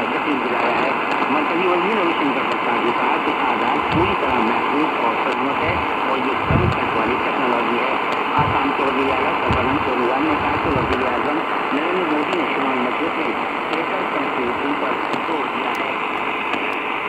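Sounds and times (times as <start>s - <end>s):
person speaking over radio: 0.0s - 16.3s
radio static hiss: 0.0s - 17.0s.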